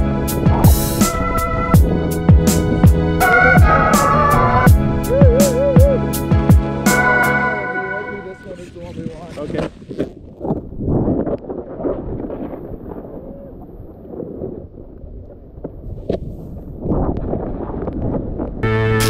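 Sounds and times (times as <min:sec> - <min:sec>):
wind buffeting microphone: 0:00.0 - 0:06.6, 0:08.1 - 0:19.0.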